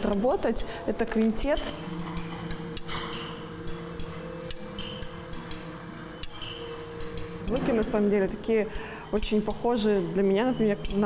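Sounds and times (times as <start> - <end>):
steady low hum: 0.0 - 11.0
metallic ticks and pings: 1.4 - 11.0.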